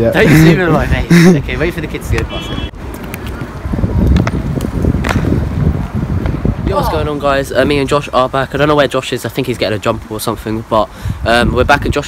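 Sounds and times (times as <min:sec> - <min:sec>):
wind rumble on microphone: 0:00.0 - 0:08.7, 0:10.3 - 0:12.0.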